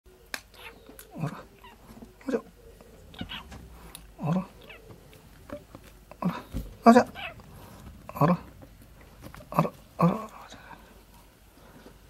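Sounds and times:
short vocal sounds: 0:02.2 - 0:04.7.

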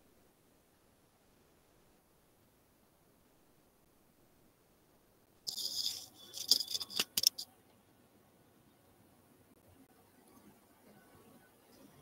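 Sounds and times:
metallic jingling: 0:05.5 - 0:07.4.

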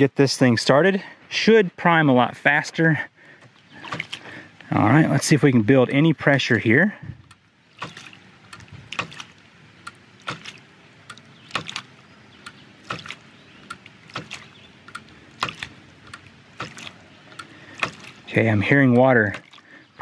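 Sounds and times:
flowing water rush: 0:03.4 - 0:05.7, 0:07.6 - 0:20.0
water hammer knock: 0:08.8 - 0:09.3, 0:14.1 - 0:14.6, 0:15.4 - 0:15.8, 0:16.6 - 0:17.0, 0:17.8 - 0:18.2.

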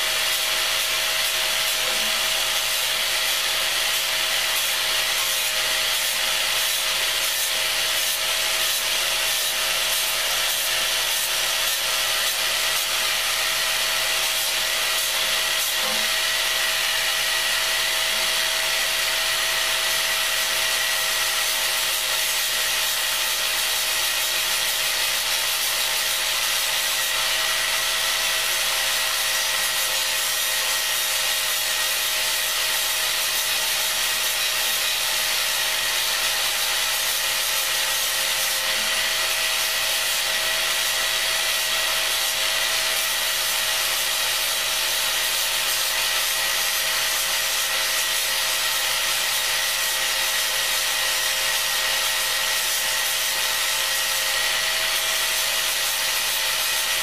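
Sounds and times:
angle grinder whining: 0:00.2 - 0:21.4, 0:38.2 - 0:43.2.

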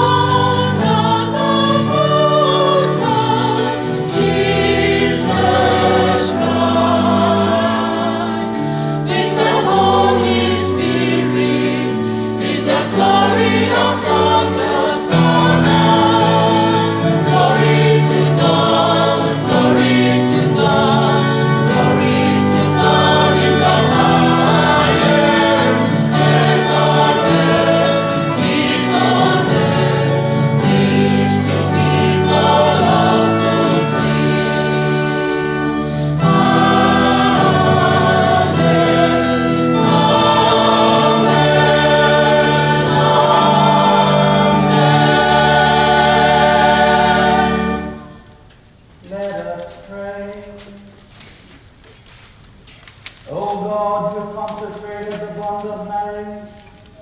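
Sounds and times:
choir singing a hymn: 0:00.0 - 0:48.4.

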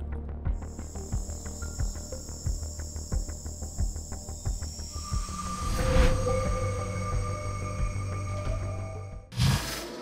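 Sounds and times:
low drone: 0:00.5 - 0:09.6
high whine: 0:00.6 - 0:09.3.

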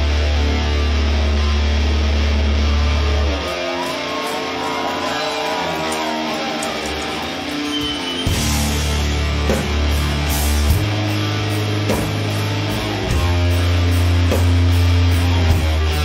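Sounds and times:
bass guitar: 0:00.0 - 0:16.0
distorted electric guitars: 0:00.0 - 0:16.0
drums: 0:00.0 - 0:16.0.

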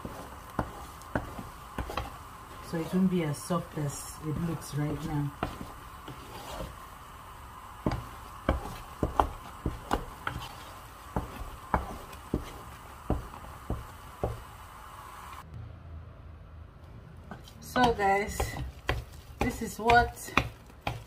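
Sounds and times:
wooden spatula knocking on pot: 0:00.0 - 0:02.9, 0:04.3 - 0:06.7, 0:07.8 - 0:14.5, 0:17.7 - 0:21.0.

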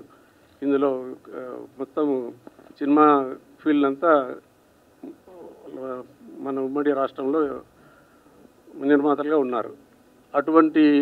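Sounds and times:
man speaking into a microphone: 0:00.6 - 0:07.7, 0:08.7 - 0:11.0.

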